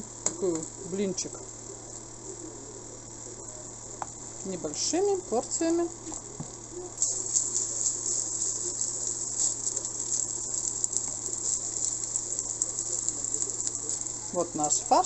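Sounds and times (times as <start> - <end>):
cutlets sizzling in oil: 5.4 - 15.0.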